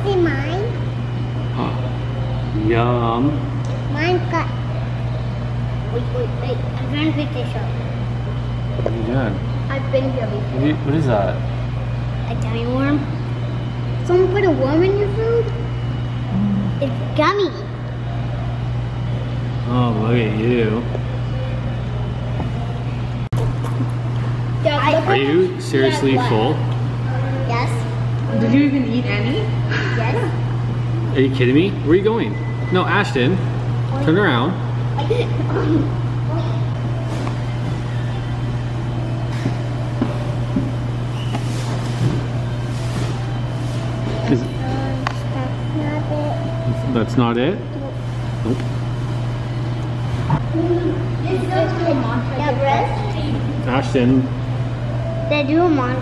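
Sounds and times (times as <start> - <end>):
child speaking: 0.0 - 1.0, 3.9 - 4.8, 5.9 - 8.0, 9.7 - 10.5, 12.2 - 13.2, 16.8 - 17.8, 24.6 - 26.4, 27.2 - 28.0, 29.1 - 30.4, 35.0 - 36.7, 44.6 - 46.6, 50.5 - 53.6, 55.3 - 56.0
low machine hum: 0.0 - 56.0
room noise: 0.8 - 56.0.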